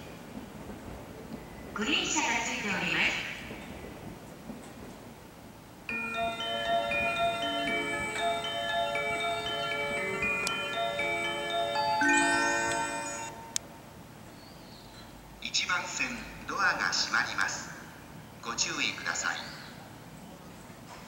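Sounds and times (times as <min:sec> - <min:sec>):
electronic chime tune: 0:06.0 - 0:13.4.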